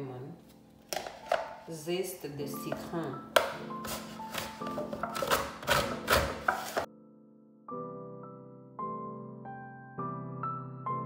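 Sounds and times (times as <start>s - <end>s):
soft piano music: 0.0s - 11.0s
lemon scraped on metal grater: 3.8s - 6.9s.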